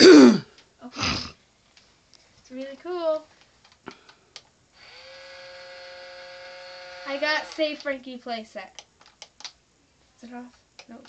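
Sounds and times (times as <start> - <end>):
steady electric buzz: 4.7 - 8.6.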